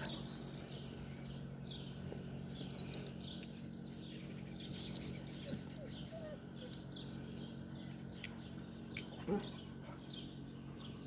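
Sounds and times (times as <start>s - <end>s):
small birds chirping: 0.0s - 11.0s
steady low hum: 0.0s - 11.0s.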